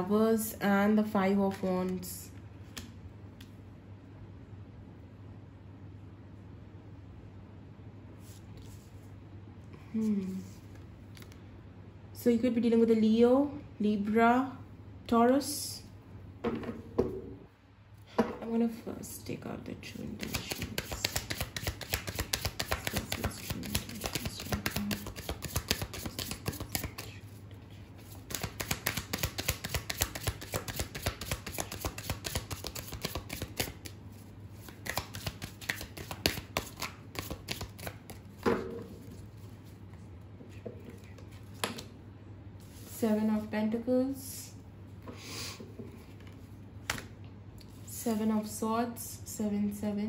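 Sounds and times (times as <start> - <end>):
cards being shuffled: 10.3 - 11.4, 20.0 - 39.8
person speaking: 18.4 - 27.4.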